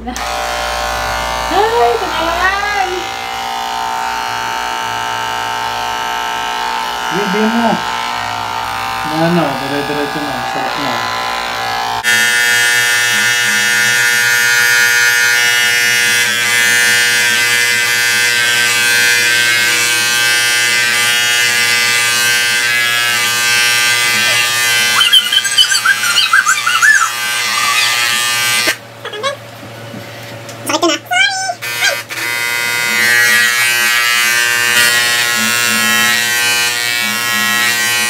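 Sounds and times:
electric hair clippers buzzing: 0.0s - 29.5s, 30.3s - 38.0s
wavering high-pitched sounds: 24.1s - 28.2s.

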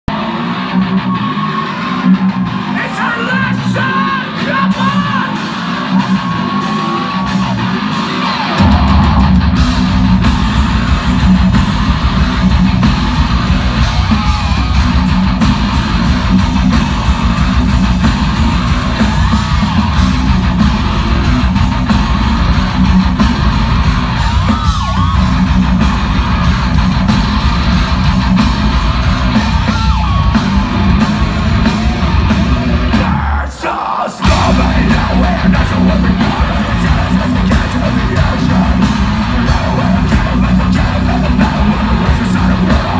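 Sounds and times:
electric guitar: 0.1s - 33.5s, 34.2s - 42.9s
heavy metal band playing live: 0.1s - 42.9s.

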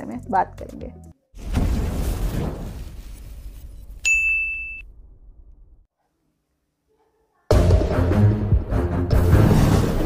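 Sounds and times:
sharp ding: 4.0s - 4.9s.

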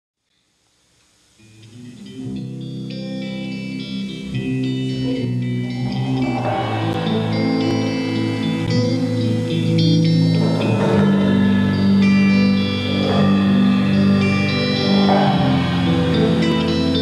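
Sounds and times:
electric bass guitar: 1.5s - 17.0s
live band playing chords: 2.6s - 17.0s.

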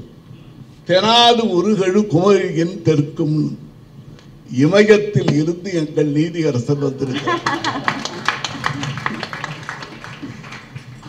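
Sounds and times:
audience laughing: 7.1s - 10.6s
scattered clapping: 7.4s - 11.0s.

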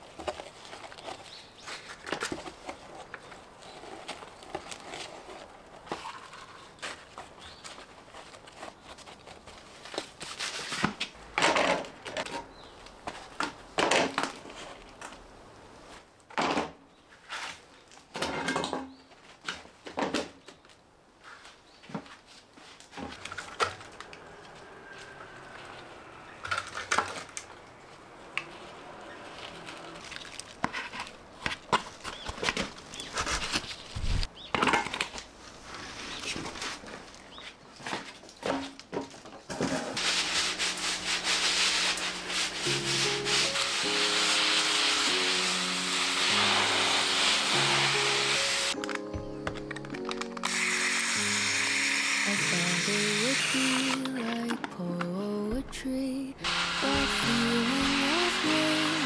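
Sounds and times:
steady hiss: 40.0s - 48.8s
soft background music: 42.3s - 59.0s.

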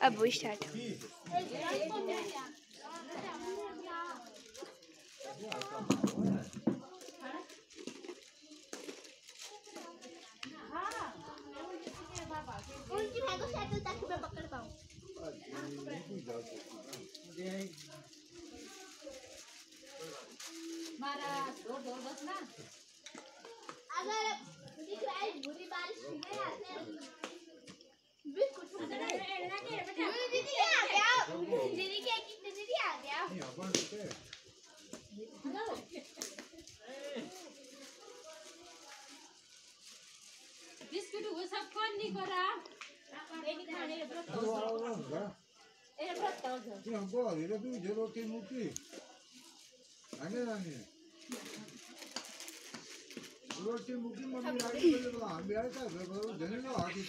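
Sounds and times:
children talking and calling out: 0.0s - 46.9s.

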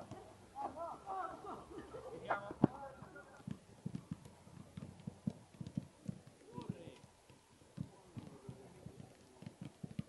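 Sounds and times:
footballs kicked on artificial turf: 0.0s - 0.4s, 2.2s - 10.0s.

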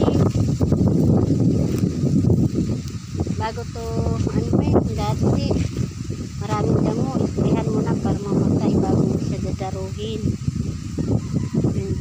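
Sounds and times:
wind buffeting a microphone: 0.0s - 12.0s.

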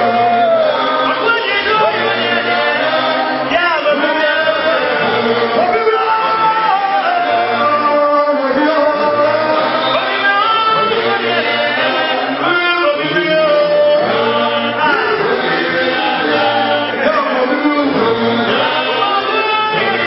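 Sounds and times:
men singing gospel song: 0.0s - 20.0s
voice singing into microphone: 0.0s - 20.0s.

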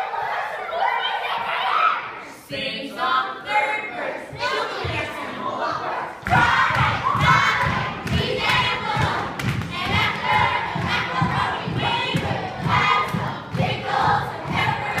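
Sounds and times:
children chanting a song: 0.0s - 15.0s.

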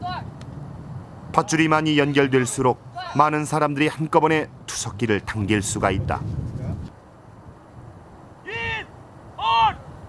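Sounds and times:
faint outdoor background: 0.0s - 10.0s
loud shouted call: 1.4s - 3.3s, 8.4s - 9.9s.

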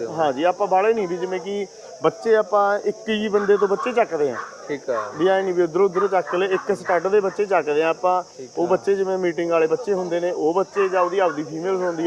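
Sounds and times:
high-pitched insect chirring: 0.0s - 12.0s
men talking: 0.0s - 12.0s.

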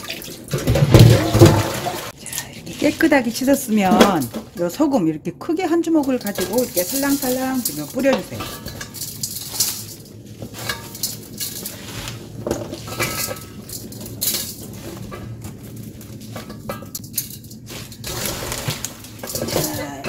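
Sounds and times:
leaves rustling and crunching: 2.3s - 4.7s, 6.0s - 20.0s
salt scattered over leaves: 6.2s - 16.5s.

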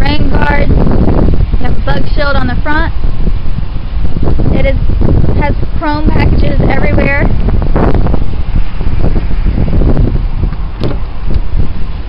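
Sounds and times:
wind buffeting microphone: 0.0s - 12.0s
car door unlatching click: 10.8s - 11.4s.

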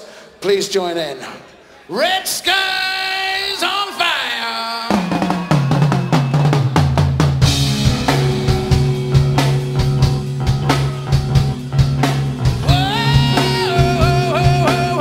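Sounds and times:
drum kit: 4.9s - 15.0s
electric guitar: 5.1s - 15.0s
bass guitar: 6.7s - 15.0s.

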